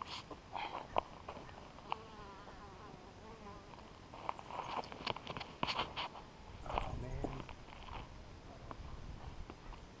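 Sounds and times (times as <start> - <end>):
insect buzzing: 0.0 - 8.4.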